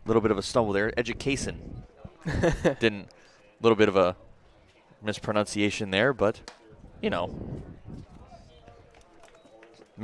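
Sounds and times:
faint distant voices: 0:00.0 - 0:10.0.

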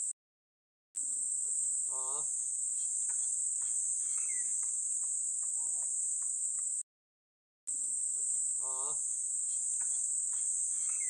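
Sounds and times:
high-pitched insect chorus: 0:01.0 - 0:06.8, 0:07.7 - 0:11.0.

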